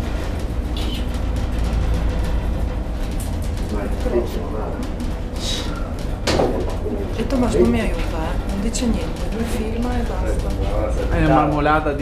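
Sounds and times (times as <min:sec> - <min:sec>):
cable car cabin rumble: 0:00.0 - 0:12.0
faint background music: 0:00.0 - 0:12.0.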